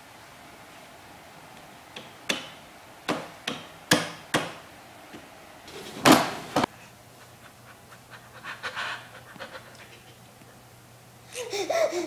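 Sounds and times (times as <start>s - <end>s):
baby panting: 7.7s - 10.2s, 11.3s - 12.0s.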